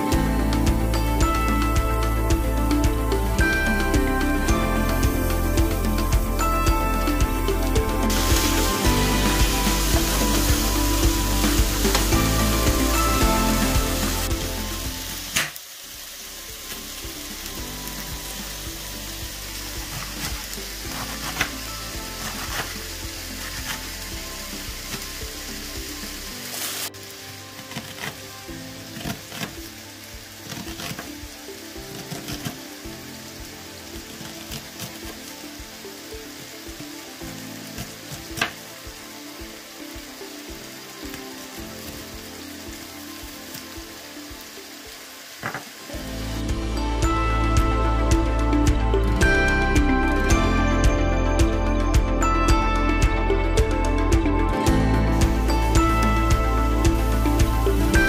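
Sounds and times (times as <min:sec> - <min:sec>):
chicken sizzling in a pan: 0:00.0 - 0:49.1, 0:55.0 - 0:58.0.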